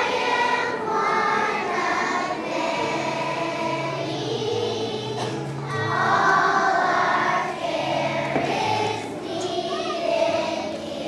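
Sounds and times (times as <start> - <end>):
children's choir singing: 0.0 - 11.0
low held accompaniment notes: 0.0 - 11.0.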